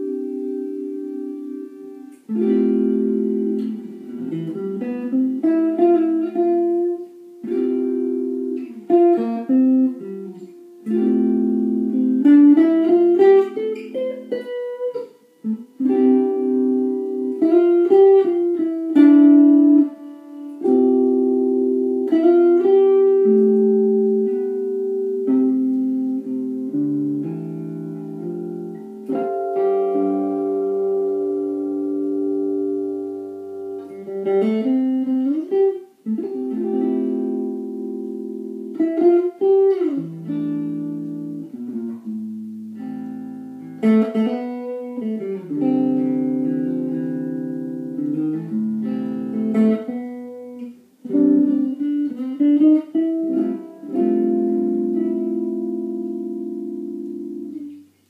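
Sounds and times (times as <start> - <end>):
electric guitar through amp: 0.0 - 58.0.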